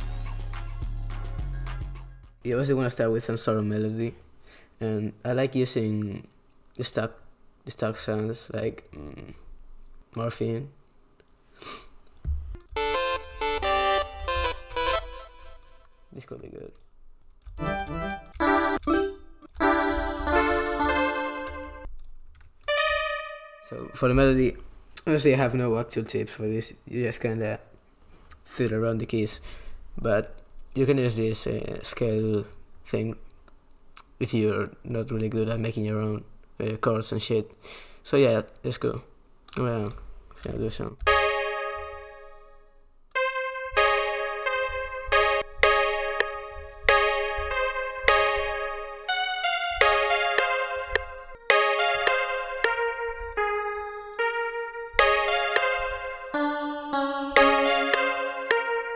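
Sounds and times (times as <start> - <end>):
synthesizer notes and chords: 0.0 - 2.6, 12.2 - 16.2, 17.4 - 22.0, 22.6 - 24.6, 41.0 - 58.9.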